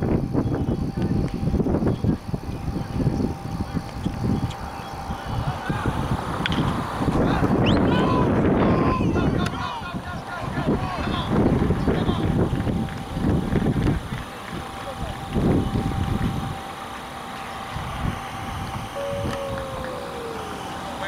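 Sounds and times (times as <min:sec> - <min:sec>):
distant voices: 0:00.0 - 0:21.0
wind buffeting microphone: 0:00.0 - 0:21.0
faint steady tone: 0:12.6 - 0:21.0.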